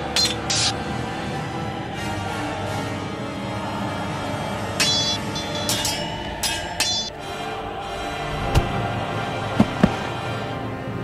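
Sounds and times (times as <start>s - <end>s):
sword blades clashing: 0.0s - 0.8s, 4.8s - 7.2s
background music: 0.0s - 11.0s.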